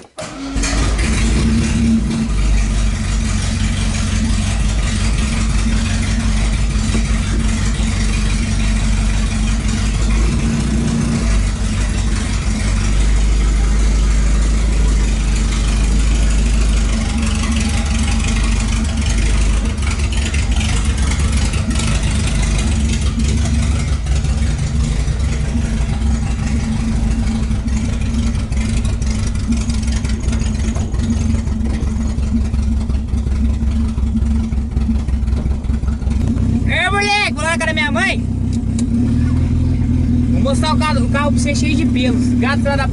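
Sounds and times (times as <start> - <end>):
car engine idling: 0.0 - 42.9.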